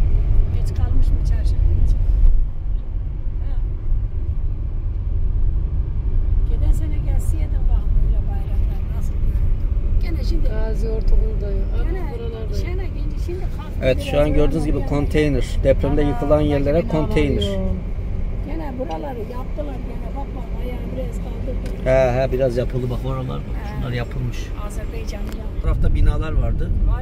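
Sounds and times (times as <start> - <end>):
road and engine rumble in car: 0.0 - 27.0.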